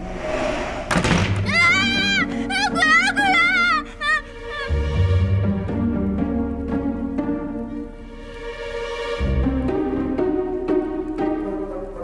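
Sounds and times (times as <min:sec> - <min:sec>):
sudden thud: 0:00.9 - 0:01.5
person mimicking a ghost: 0:01.7 - 0:04.7.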